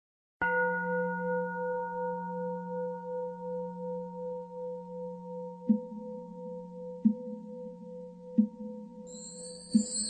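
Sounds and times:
bowl bell ringing: 0.4 - 10.0.

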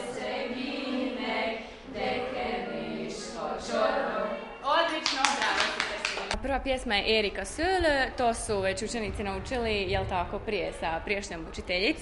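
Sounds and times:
children singing: 0.0 - 4.6
clapping: 5.0 - 6.4.

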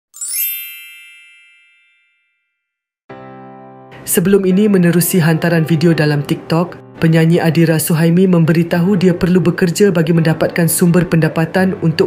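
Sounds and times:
bright ringing chime: 0.1 - 2.8.

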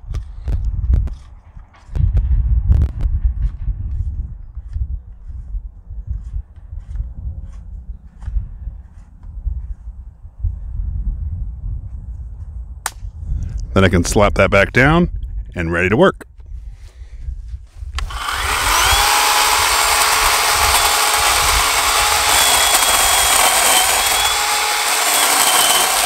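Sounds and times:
low microphone rumble: 0.0 - 15.6.

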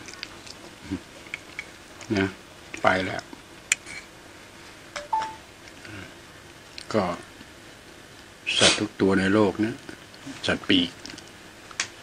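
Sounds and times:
faint beep: 5.0 - 5.4.

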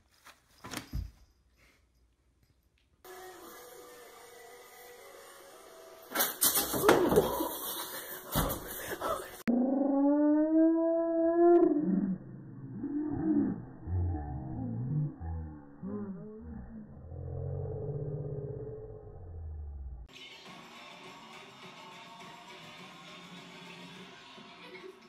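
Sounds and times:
soft wavering vocal sounds: 7.2 - 18.9
dog howling: 9.5 - 12.2.

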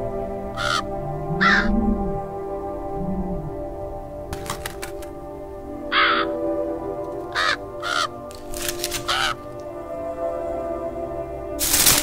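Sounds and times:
background music: 0.0 - 12.0
crow cawing: 0.6 - 1.7, 5.9 - 6.4, 7.3 - 8.4, 9.0 - 9.6.

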